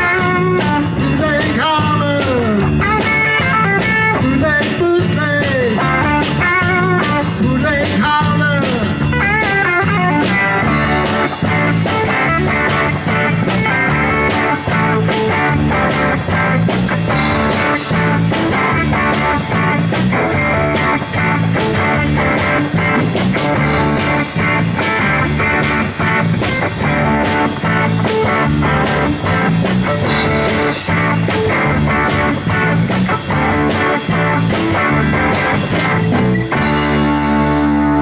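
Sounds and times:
acoustic guitar: 0.0 - 38.0
bass guitar: 0.0 - 38.0
drum kit: 0.0 - 38.0
electric guitar: 0.0 - 38.0.

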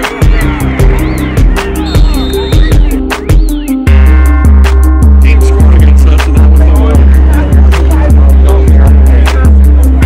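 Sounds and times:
deep bass notes dropping in pitch: 0.0 - 10.0.

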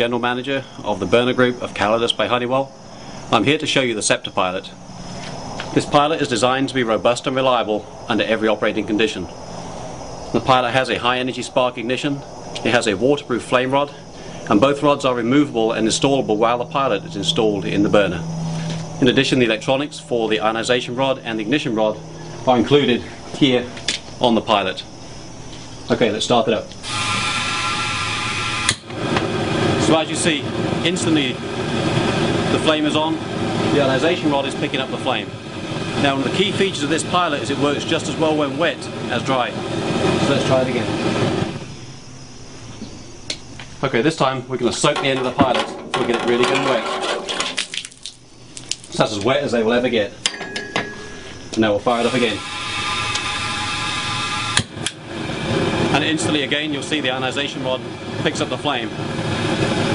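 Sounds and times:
gas burner buzzing hiss: 0.0 - 59.9
sharp click of pilot lighting: 23.7 - 24.2, 28.5 - 29.3, 42.8 - 43.8, 53.0 - 53.4, 54.5 - 55.0.

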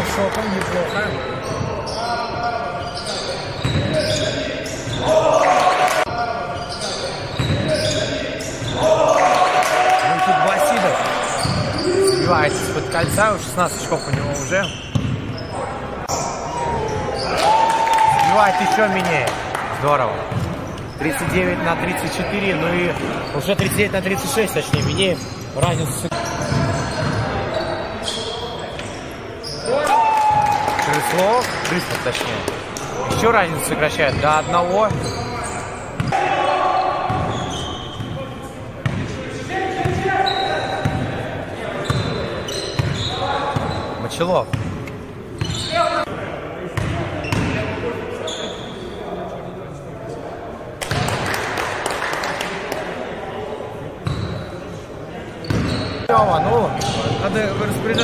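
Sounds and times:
players' voices in a hall: 0.0 - 58.0.

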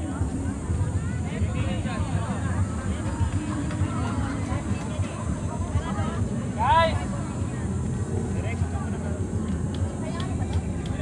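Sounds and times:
distant indistinct voices: 0.0 - 11.0.

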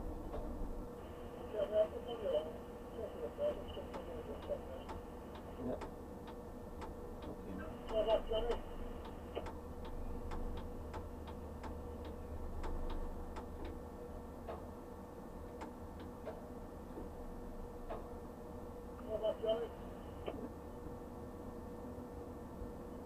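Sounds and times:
low steady hum: 0.0 - 23.0
steady ticking: 3.9 - 13.8.

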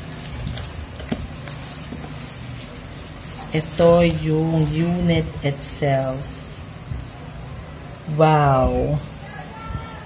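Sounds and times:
plastic sleeve rustling: 0.0 - 5.4.

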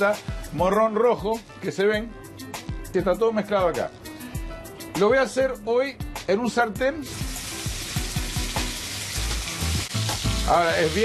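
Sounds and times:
background music: 0.0 - 11.0
meatballs sizzling in a frying pan: 7.0 - 11.0.

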